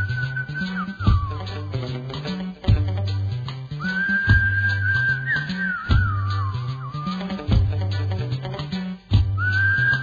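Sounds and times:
instrumental music with bass line: 0.0s - 10.0s.

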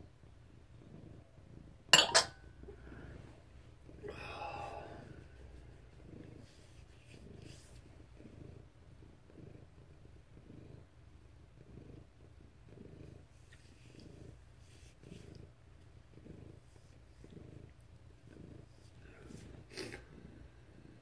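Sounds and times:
cat purring: 0.0s - 21.0s.

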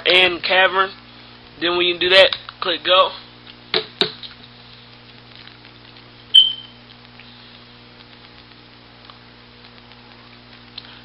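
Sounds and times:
low electrical hum: 0.0s - 11.0s
short high-pitched beep: 6.3s - 6.8s.

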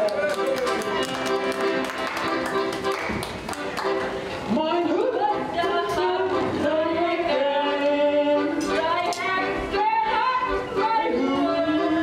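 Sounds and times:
hand claps: 0.0s - 4.1s
accordion playing chords: 0.0s - 12.0s.

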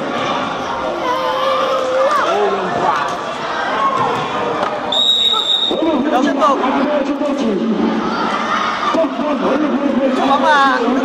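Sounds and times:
children shouting: 0.0s - 2.7s
high whistle blast: 4.9s - 5.9s.

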